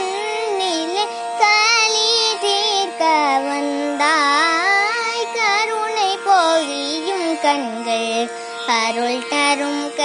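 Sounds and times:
boy singing devotional song: 0.0 - 10.0.

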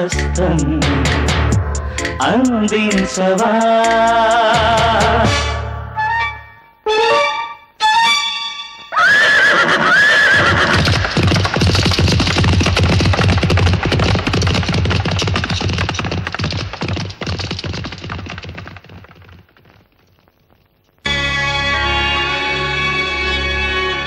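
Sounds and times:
horse whinnying: 8.9 - 11.9
hooves galloping: 8.9 - 21.1.

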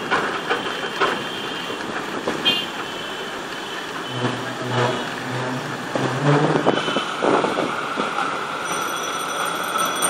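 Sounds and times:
vehicle ride rumble: 0.0 - 10.0.

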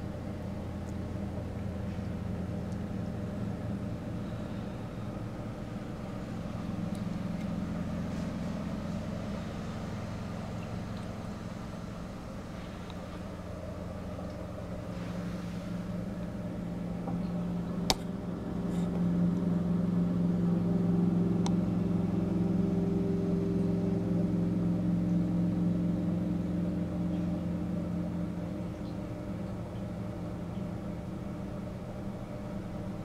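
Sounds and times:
aquarium equipment humming: 0.0 - 33.0.

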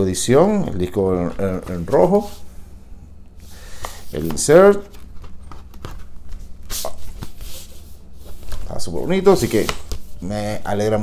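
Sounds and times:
paper rustling: 4.0 - 10.2
paper swish: 6.6 - 8.6.

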